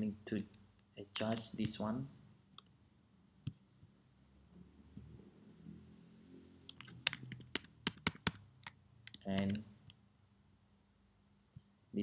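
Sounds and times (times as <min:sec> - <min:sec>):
computer keyboard keystrokes: 0:06.7 - 0:09.6.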